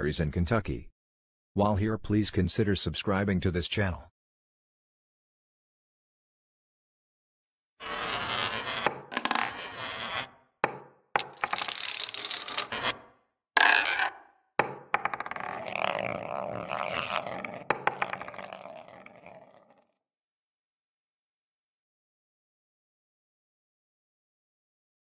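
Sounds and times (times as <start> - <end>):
balls rolling scraping and knocking: 7.8 - 19.8.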